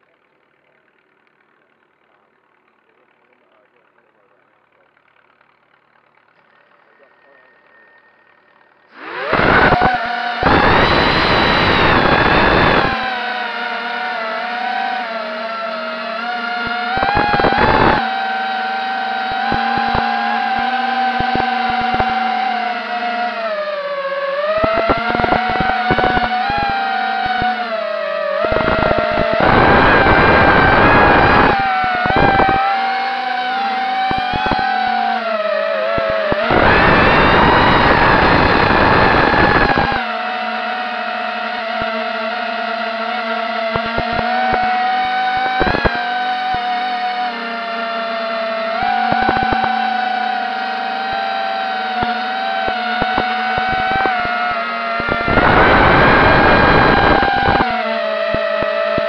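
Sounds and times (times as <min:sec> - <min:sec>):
drone motors whining: 0:00.0 - 0:59.0
loud rushing noise: 0:53.0 - 0:57.7.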